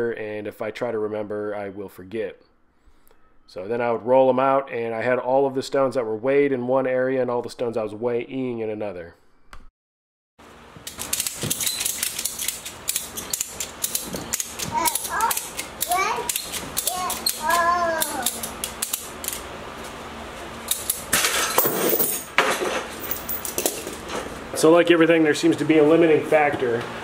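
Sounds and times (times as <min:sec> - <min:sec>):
ratchet clicking: 0:10.8 - 0:19.4
strap and chain jerking loose: 0:10.8 - 0:19.4.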